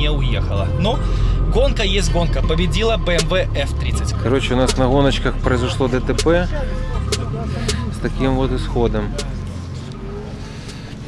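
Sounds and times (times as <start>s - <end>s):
car engines running: 0.0s - 11.0s.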